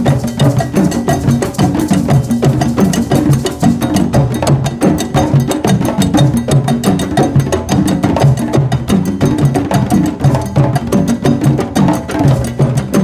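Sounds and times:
hand drums playing fast rhythm: 0.0 - 13.0.

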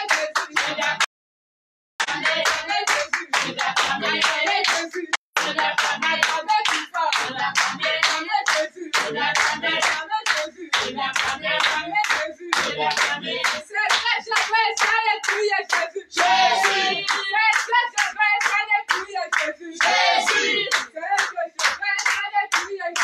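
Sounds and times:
congregation clapping: 0.0 - 1.1, 2.0 - 23.0
congregation singing: 0.0 - 1.1, 2.0 - 17.9, 18.6 - 21.4.

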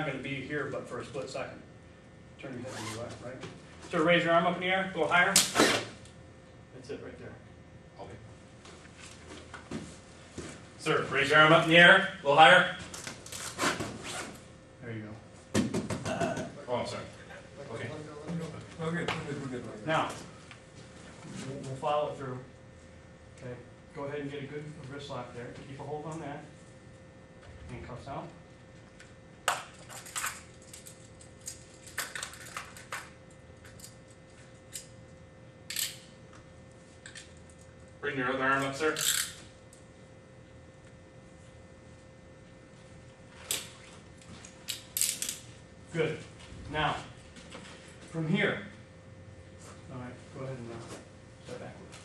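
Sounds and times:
handcuffs clicking and jingling: 35.7 - 36.0.

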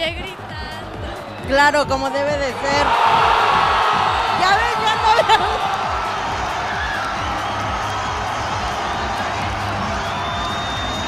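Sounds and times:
background music: 0.0 - 11.0
stadium crowd cheering: 2.5 - 11.0.

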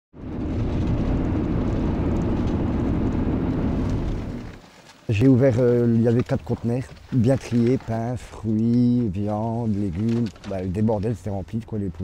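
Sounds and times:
road rumble: 0.1 - 12.0
car engine hum: 0.2 - 4.7.

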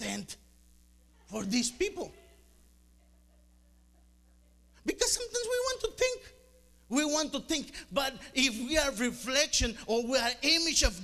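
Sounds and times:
man speaking: 0.0 - 0.4, 1.3 - 2.2, 4.8 - 11.0
faint steady low hum: 0.0 - 11.0.

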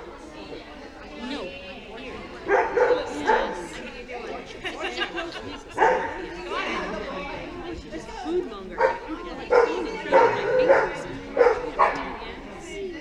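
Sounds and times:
murmur of voices: 0.0 - 13.0
dog barking: 2.5 - 3.6, 5.8 - 6.2, 8.8 - 12.2.

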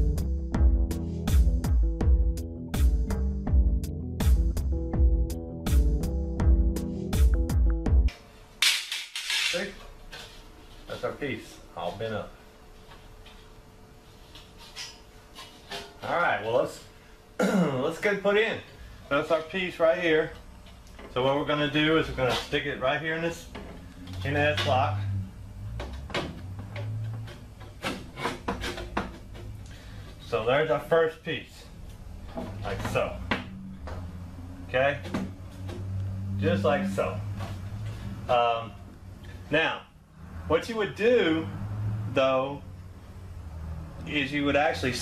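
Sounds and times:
metal scraping against metal: 8.6 - 11.0, 12.9 - 16.2, 21.9 - 30.4
man speaking: 34.7 - 35.2, 36.4 - 37.3.

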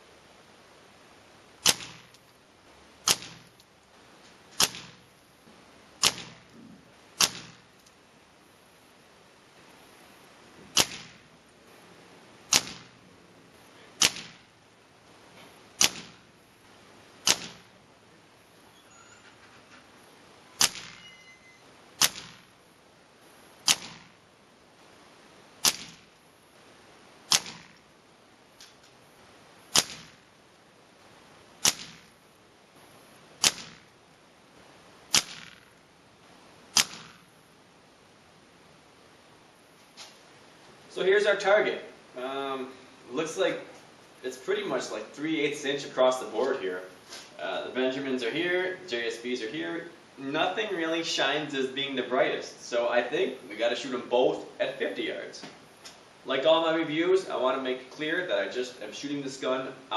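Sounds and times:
air rifle firing: 1.6 - 2.2, 3.0 - 3.6, 4.6 - 5.1, 6.0 - 6.6, 7.2 - 7.7, 10.7 - 11.3, 12.5 - 13.0, 14.0 - 14.6, 15.8 - 16.4, 17.2 - 17.8, 20.6 - 21.1, 22.0 - 22.6, 23.6 - 24.2, 25.6 - 26.2, 27.3 - 27.8, 29.7 - 30.3, 31.6 - 32.2, 33.4 - 33.9, 35.1 - 35.8, 36.7 - 37.4.

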